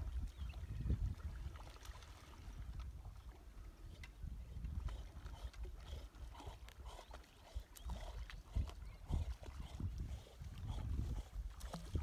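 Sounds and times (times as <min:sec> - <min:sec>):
wind buffeting microphone: 0:00.0 - 0:01.7, 0:02.3 - 0:12.0.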